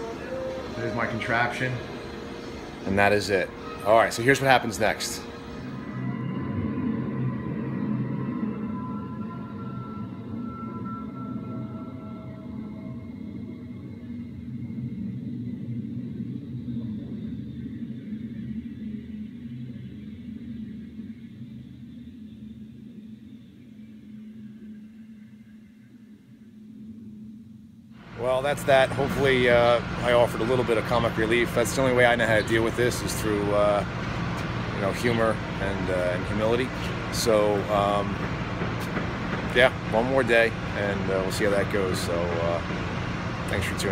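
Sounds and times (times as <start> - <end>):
held higher tones: 0.0 - 14.5
low droning rumble: 0.0 - 43.9.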